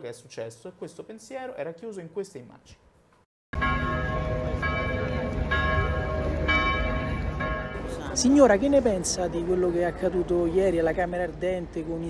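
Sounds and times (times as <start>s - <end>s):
church bells ringing: 3.6s - 8.7s
traffic noise: 3.6s - 12.0s
crowd noise: 4.1s - 12.0s.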